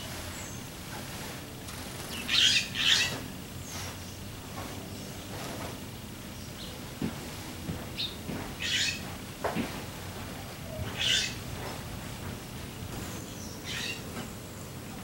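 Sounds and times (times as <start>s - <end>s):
raven harsh calls: 1.8s - 3.3s, 10.6s - 11.6s, 13.4s - 14.0s
songbird chirping: 10.4s - 15.0s.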